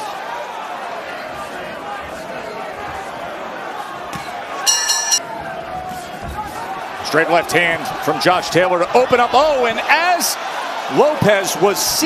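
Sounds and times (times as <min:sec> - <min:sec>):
arena crowd murmur: 0:00.0 - 0:12.0
boxing ring bell: 0:04.7 - 0:05.2.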